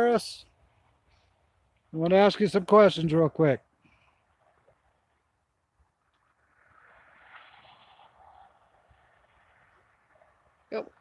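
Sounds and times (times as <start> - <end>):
distant traffic rushing: 0.0 - 11.0
truck passing: 4.1 - 11.0.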